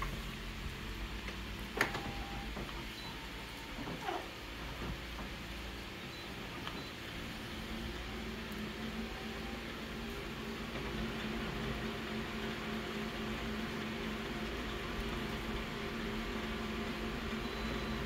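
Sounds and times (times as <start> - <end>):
laser copier whirring: 0.0 - 18.0.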